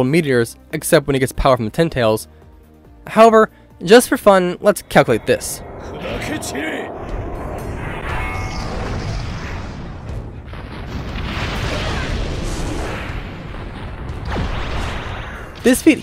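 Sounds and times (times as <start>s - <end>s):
music: 0.0s - 16.0s
heavy rumble of booms and blasts: 4.5s - 16.0s.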